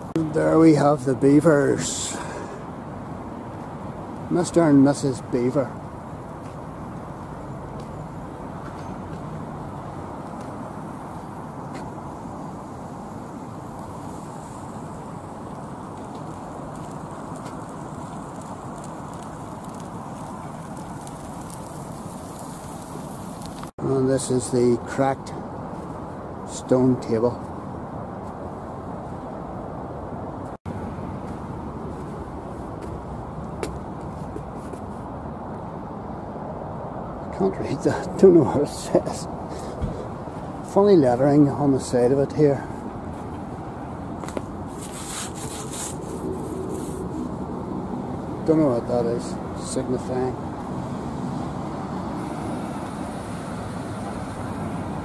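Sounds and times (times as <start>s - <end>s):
road traffic rumble: 0.0s - 55.0s.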